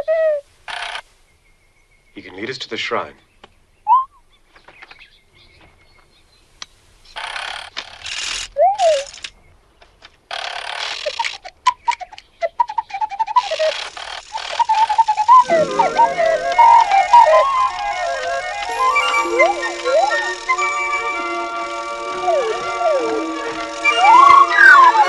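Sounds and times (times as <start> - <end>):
mechanical whirring: 7.2 - 9.3, 10.3 - 25.0
rising and falling whistle: 11.8 - 25.0
electronic twitters: 12.6 - 25.0
music: 15.4 - 25.0.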